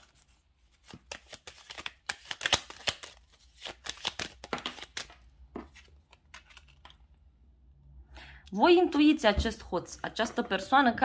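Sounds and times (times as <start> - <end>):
cards shuffled by hand: 0.0 - 7.0.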